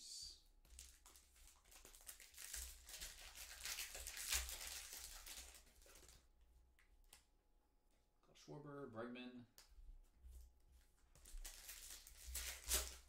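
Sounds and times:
foil wrapper tearing and crinkling: 0.7s - 6.2s, 11.2s - 13.0s.

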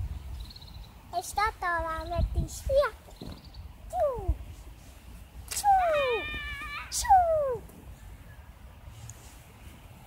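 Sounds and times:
girl calling out: 3.9s - 4.4s, 5.6s - 7.7s.

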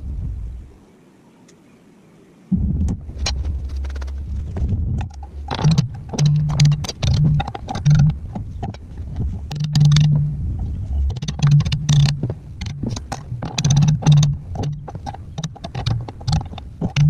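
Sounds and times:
low hum: 0.0s - 0.8s, 2.5s - 17.0s
hammer tapping steel plate: 5.1s - 8.8s.

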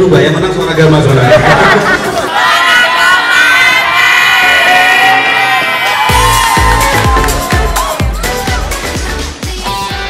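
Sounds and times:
crowd cheering and shouting: 1.1s - 10.0s
pop music with thumping beat: 6.0s - 10.0s.

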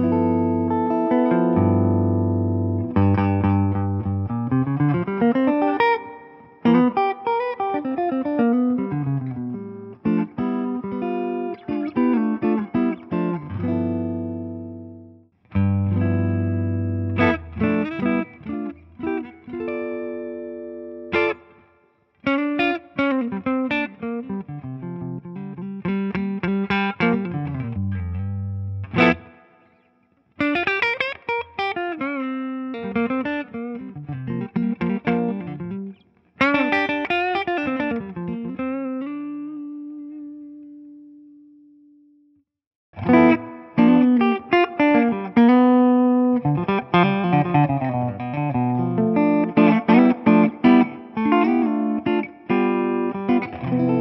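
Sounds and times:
electric guitar through amp: 43.0s - 54.0s.

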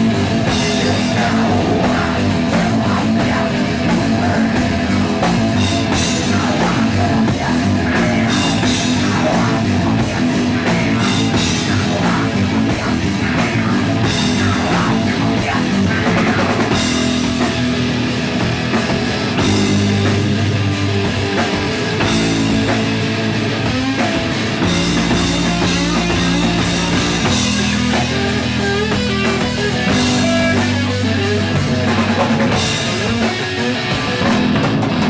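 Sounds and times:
drum kit: 0.0s - 35.0s
electric bass: 0.0s - 35.0s
electric guitar: 0.0s - 35.0s.

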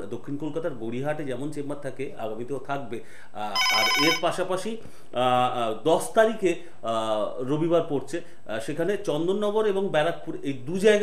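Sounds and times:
person speaking: 3.4s - 4.5s
telephone ringing trill: 3.6s - 4.3s.

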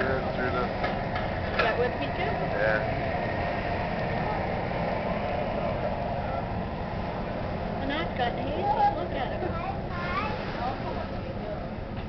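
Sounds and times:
water rushing: 0.0s - 11.9s
ferry engine rumble: 0.0s - 12.0s
wind: 0.0s - 12.0s.

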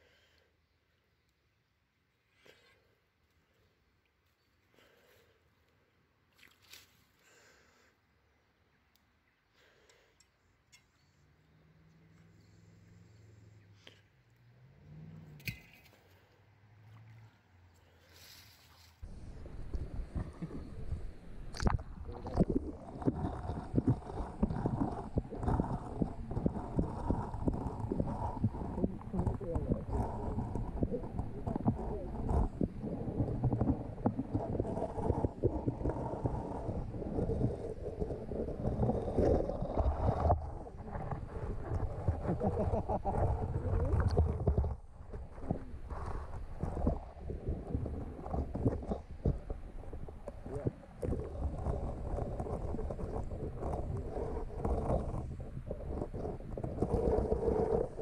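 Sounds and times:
low underwater rumble: 19.0s - 58.0s
underwater knocks and thumps: 19.5s - 58.0s.

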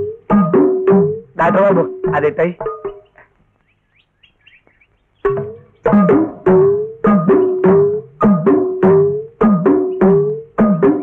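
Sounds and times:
faint bird chirping: 2.0s - 6.1s, 6.9s - 8.0s, 9.4s - 10.6s.

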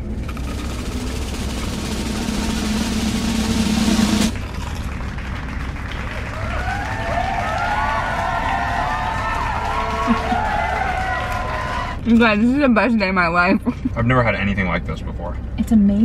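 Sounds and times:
drum roll: 0.0s - 11.7s.

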